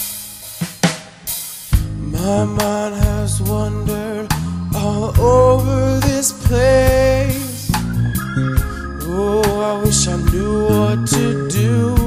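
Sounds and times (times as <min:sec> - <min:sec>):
drum kit fill: 0:00.0 - 0:12.0.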